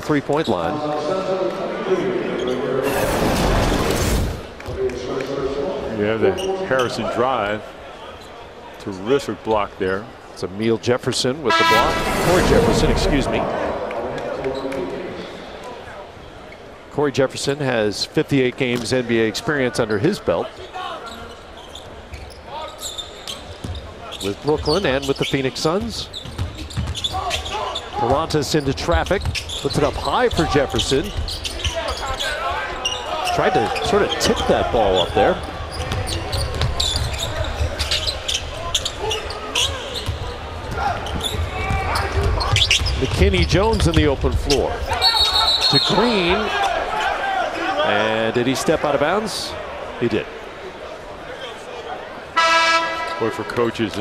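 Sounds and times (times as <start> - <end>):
crowd chatter: 0.0 - 10.4, 11.4 - 25.4, 29.7 - 54.0
low arena hum: 11.4 - 16.1.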